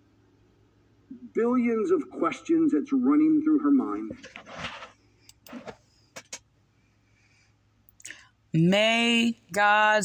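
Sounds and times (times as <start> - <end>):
soft breath: 5.0 - 8.4.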